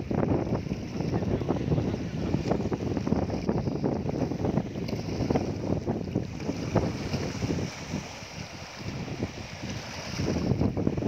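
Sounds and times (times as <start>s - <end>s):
small waves lapping on rocky shore: 0.0s - 11.0s
wind buffeting microphone: 0.0s - 11.0s.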